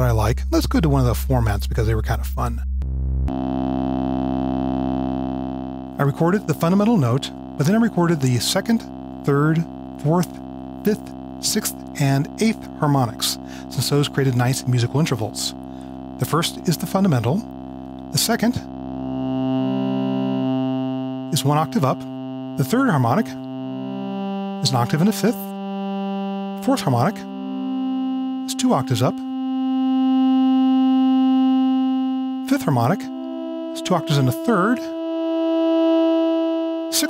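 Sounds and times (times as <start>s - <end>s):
synthesizer oscillator tone: 0.0s - 37.0s.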